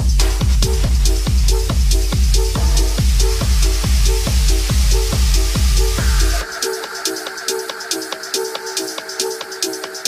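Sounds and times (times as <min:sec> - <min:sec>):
deep bass: 0:00.0 - 0:06.5
four-on-the-floor kick drum: 0:00.0 - 0:06.5
hi-hats: 0:00.0 - 0:10.0
techno music: 0:00.0 - 0:10.0.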